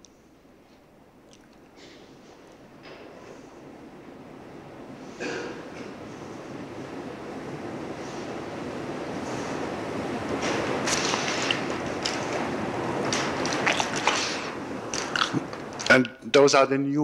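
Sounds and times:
tape hiss: 0.0s - 17.0s
rustling: 9.2s - 15.9s.

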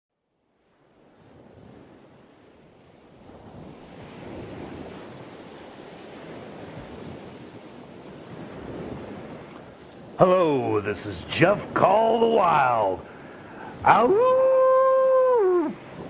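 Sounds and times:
ocean surf washing on beach: 0.4s - 16.0s.

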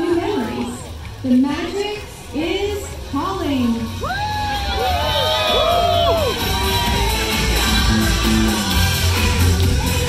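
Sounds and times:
music with steady bass: 2.4s - 10.0s
high whoops and shouts: 4.0s - 7.4s
crowd cheering: 4.0s - 10.0s.

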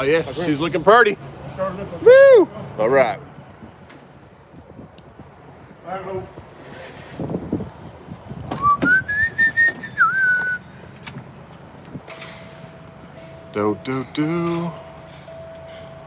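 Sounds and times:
person whistling rising note: 8.6s - 10.7s.

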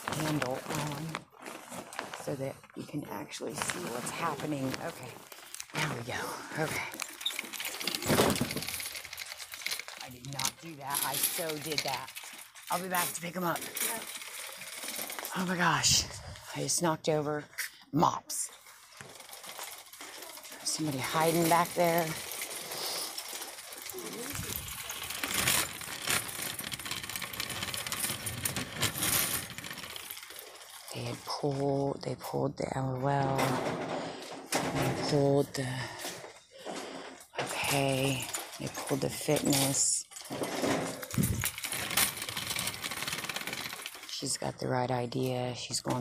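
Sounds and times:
shopping cart rattling: 0.0s - 16.9s, 18.5s - 32.0s, 32.8s - 46.0s.

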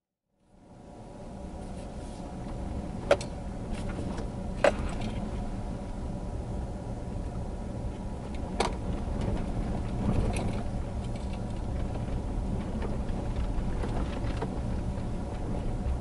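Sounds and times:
vehicle rumbling on gravel road: 0.5s - 16.0s.

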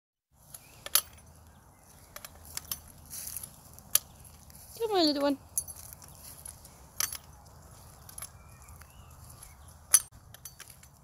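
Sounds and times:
sharp metallic clicks and knocks: 0.5s - 3.1s, 3.8s - 4.4s, 5.5s - 8.8s, 9.8s - 11.0s.

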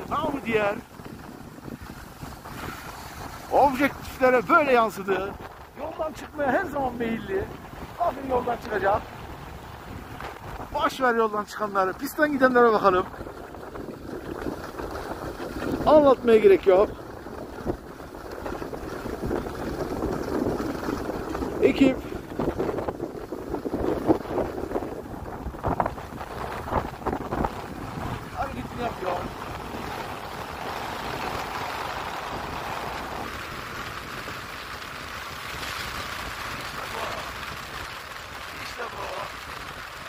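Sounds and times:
ski scrapes and knocks: 0.0s - 7.4s
skis sliding over snow: 0.0s - 40.0s
wind on microphone: 0.0s - 40.0s.

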